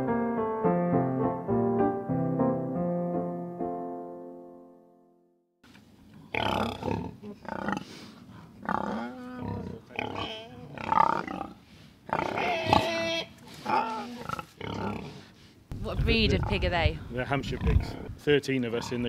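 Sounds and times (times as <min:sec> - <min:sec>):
pigs grunting and squealing: 0:06.2 - 0:07.9, 0:08.6 - 0:15.2, 0:16.2 - 0:16.7, 0:17.4 - 0:19.0.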